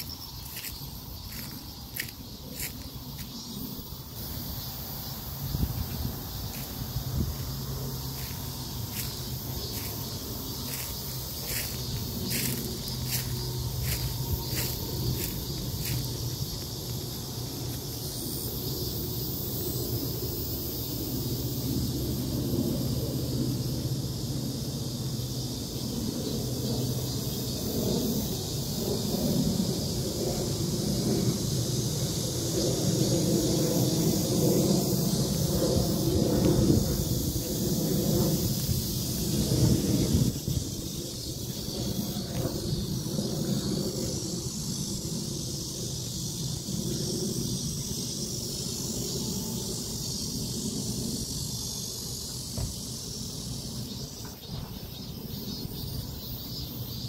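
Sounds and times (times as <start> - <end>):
wind buffeting microphone: 0.0 - 19.0, 26.1 - 49.0
steady high hiss: 0.0 - 57.0.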